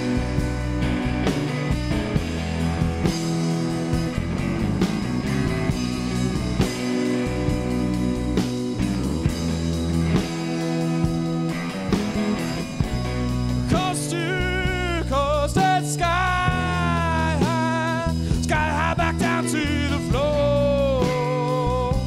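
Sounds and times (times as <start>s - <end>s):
drum kit beat: 0.0s - 22.0s
electric bass: 0.0s - 22.0s
electric guitars: 0.0s - 22.0s.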